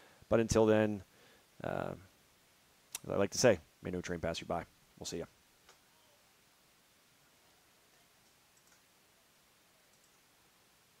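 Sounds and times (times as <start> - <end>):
faint hiss: 0.0 - 11.0
very faint clicks: 8.2 - 8.9.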